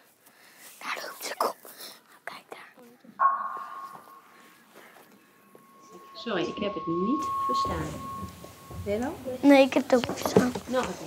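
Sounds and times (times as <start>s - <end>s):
steady high tone: 3.2s - 9.8s.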